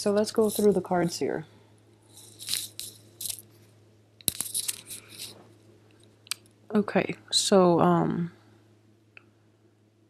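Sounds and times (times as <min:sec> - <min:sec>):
cards rustling: 0:02.2 - 0:03.4, 0:04.3 - 0:05.4.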